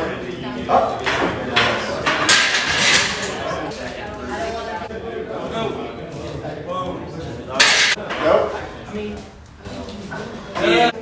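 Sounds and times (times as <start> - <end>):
voices in a gym: 0.0 - 11.0.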